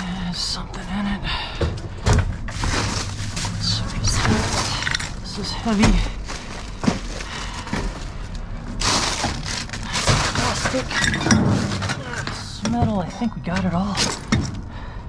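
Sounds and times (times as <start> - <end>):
cardboard and debris shifting: 2.0 - 12.9
plastic bags crinkling: 2.4 - 12.4.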